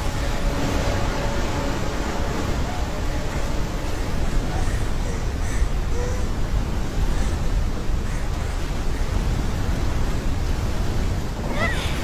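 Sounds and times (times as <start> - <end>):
waterfall rushing: 0.0 - 8.6, 9.6 - 12.0.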